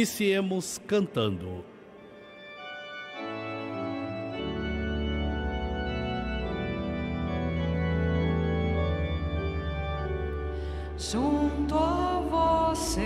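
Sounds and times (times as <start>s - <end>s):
organ playing sustained chords: 0.0s - 13.0s.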